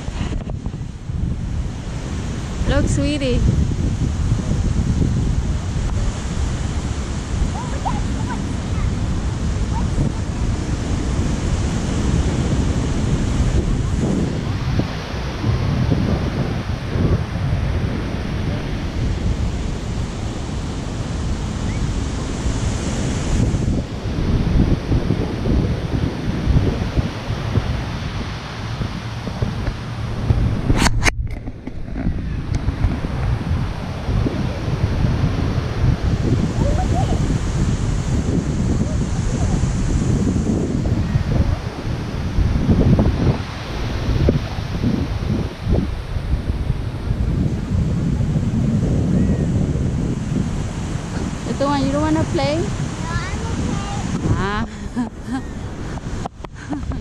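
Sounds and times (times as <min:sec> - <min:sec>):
surf: 0:00.0 - 0:57.0
wind gusting on microphone: 0:00.0 - 0:57.0
sharp click: 0:30.7 - 0:31.8.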